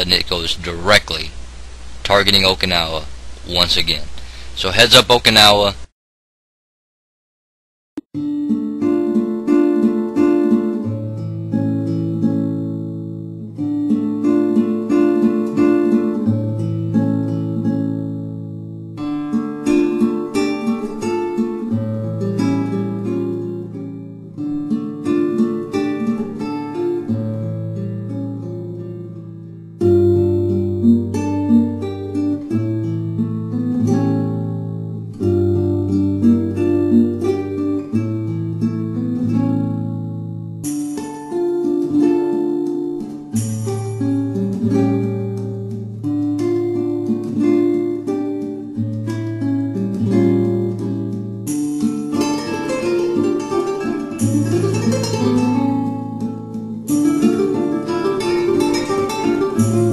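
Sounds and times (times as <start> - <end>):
acoustic guitar plucked chords: 8.2 - 59.9.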